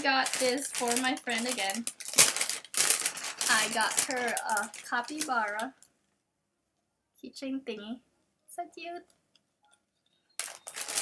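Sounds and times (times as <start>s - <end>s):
packaging crinkling: 0.0s - 5.9s, 10.4s - 11.0s.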